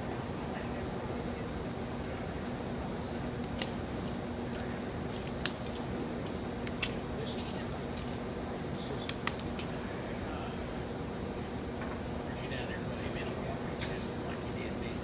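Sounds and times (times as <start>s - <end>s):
faint voices: 0.0s - 2.8s
steady low hum: 0.0s - 15.0s.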